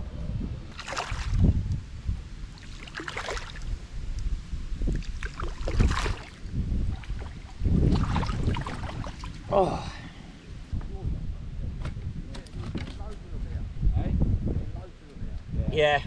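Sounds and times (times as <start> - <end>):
wind rumbling on microphone: 0.0 - 16.0
fish splashing at the surface: 0.7 - 1.5, 2.5 - 3.7, 4.8 - 9.4.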